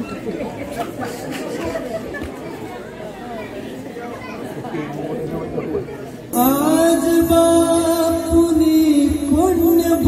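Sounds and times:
chatter of many voices: 0.0 - 10.0.

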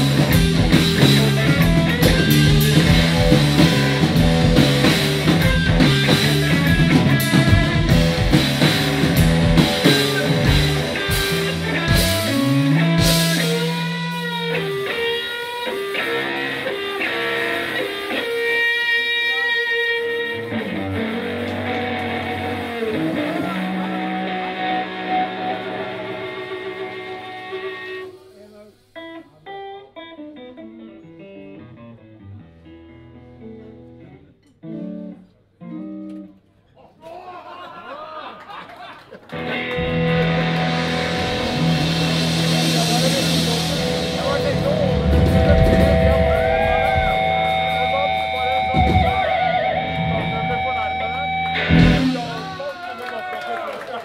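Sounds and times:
electric guitar bent ringing notes: 0.0 - 18.7, 39.4 - 52.6
bass guitar: 0.0 - 28.2, 30.5 - 36.4, 39.3 - 53.0
drums: 0.0 - 33.4, 36.9 - 54.0.

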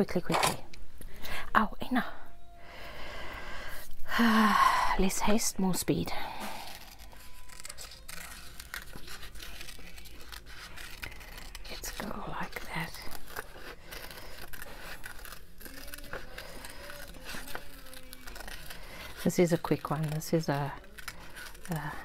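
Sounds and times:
paper crackling: 6.0 - 22.0
scissors snipping paper: 6.4 - 22.0.

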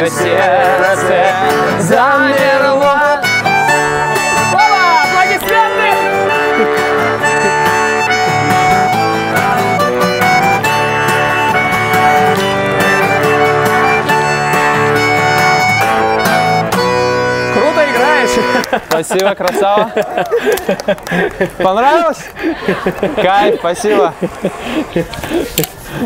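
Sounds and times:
acoustic guitar strumming: 0.0 - 19.8
voices: 0.0 - 26.0
button accordion playing chords: 2.9 - 19.0.

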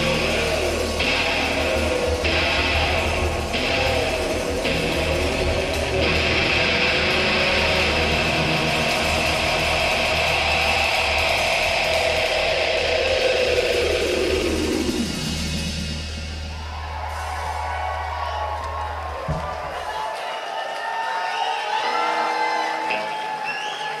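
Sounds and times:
audience cheering and whooping: 0.0 - 15.0, 16.1 - 24.0
low bass drone: 0.0 - 16.8
live rock band playing: 0.0 - 18.2.

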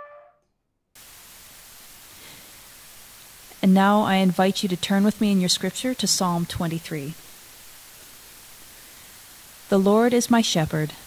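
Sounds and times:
held trumpet note: 0.0 - 0.4
recording hiss: 1.0 - 11.0.

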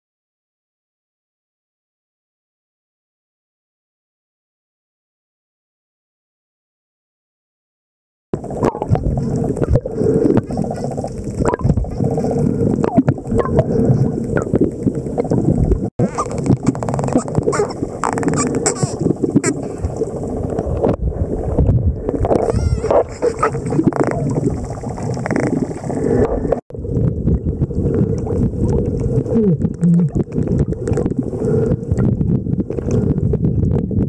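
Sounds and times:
muffled underwater rush: 8.4 - 34.0
dolphin whistles: 22.4 - 23.6.

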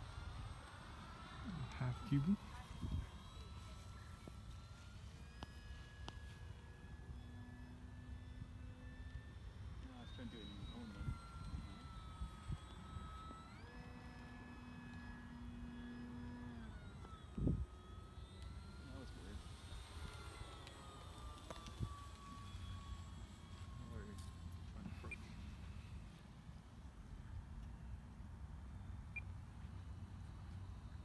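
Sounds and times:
model plane motor whine: 0.0 - 31.0.

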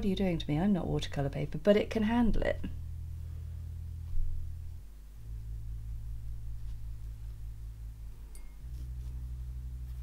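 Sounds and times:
soft bass drone music: 0.0 - 10.0.

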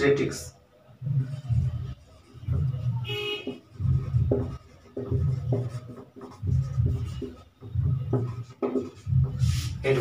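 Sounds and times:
marker pen writing on whiteboard: 1.0 - 10.0.

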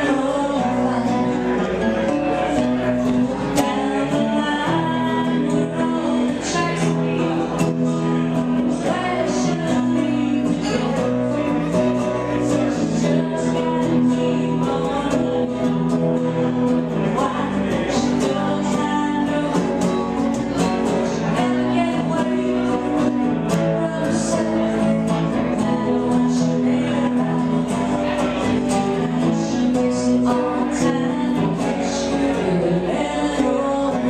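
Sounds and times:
acoustic guitar strumming: 0.0 - 34.0
woman singing into microphone: 0.0 - 34.0.

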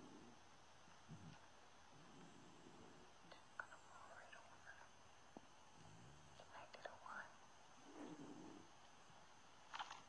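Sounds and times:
faint whispery voice: 2.8 - 5.0, 6.2 - 8.7.

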